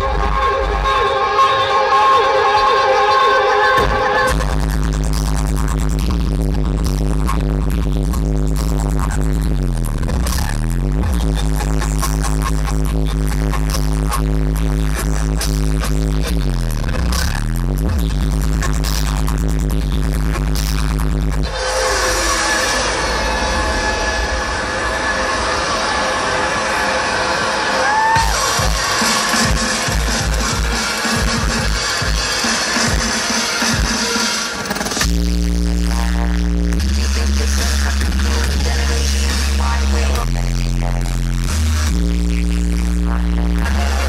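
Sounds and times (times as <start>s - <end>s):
live electronic music: 0.0s - 44.0s
heavy stepping bass line: 3.8s - 21.6s, 28.2s - 44.0s.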